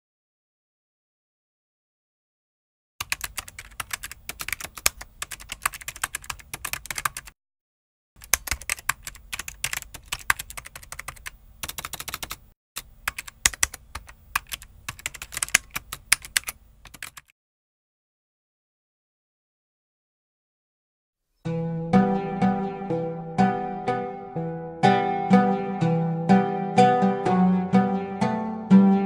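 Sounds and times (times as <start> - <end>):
rapid keyboard typing: 3.0 - 7.4, 8.2 - 17.3.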